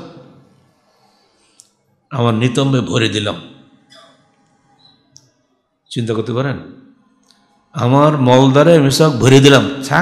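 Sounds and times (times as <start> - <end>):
man speaking: 2.1 - 3.5, 5.9 - 6.7, 7.8 - 10.0.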